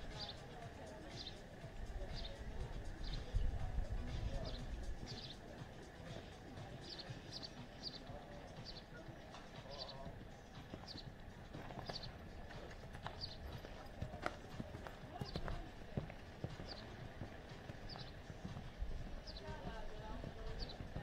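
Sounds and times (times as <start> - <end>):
horse hoofbeats on sand: 0.1 - 21.0.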